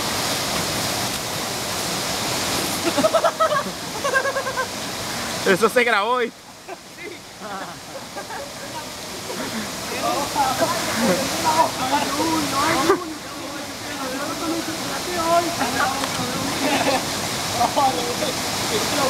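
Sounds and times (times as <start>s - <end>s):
rushing water: 0.0s - 19.0s
voices talking and calling: 5.5s - 19.0s.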